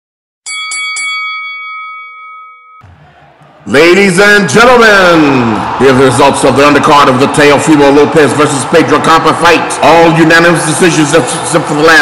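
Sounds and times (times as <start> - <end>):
boxing ring bell ringing: 0.4 - 2.8.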